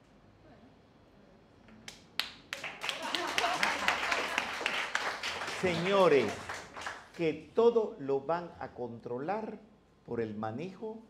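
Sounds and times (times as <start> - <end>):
audience applause: 2.5 - 7.2.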